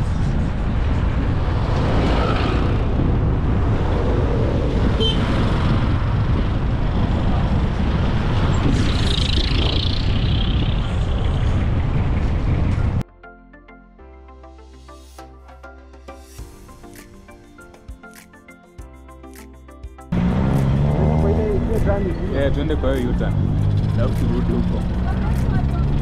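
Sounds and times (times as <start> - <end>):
road traffic rumble: 0.0 - 13.0, 20.1 - 26.0.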